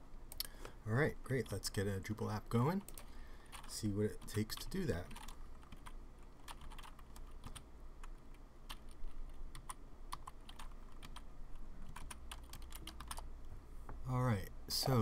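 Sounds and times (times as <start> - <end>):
faint low hum: 0.0 - 15.0
computer keyboard typing: 2.8 - 13.3.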